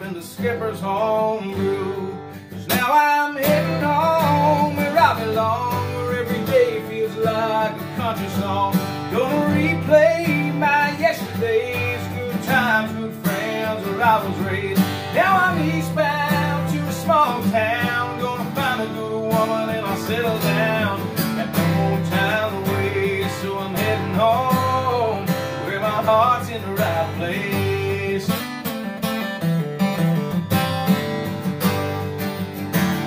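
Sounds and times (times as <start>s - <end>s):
man singing country song: 0.0s - 29.6s
acoustic guitar strumming: 0.0s - 33.0s.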